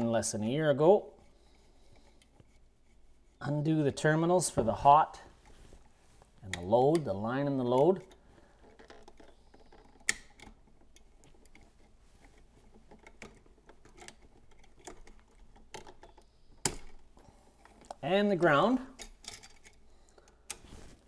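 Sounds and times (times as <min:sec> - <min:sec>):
wall switch and wires clicking: 0:06.4 - 0:20.7.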